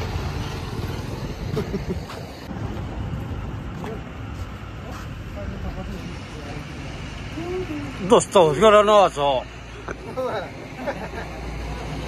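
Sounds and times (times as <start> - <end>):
scooter engine rumble: 0.0 - 8.0
road noise on dirt road: 0.0 - 12.0.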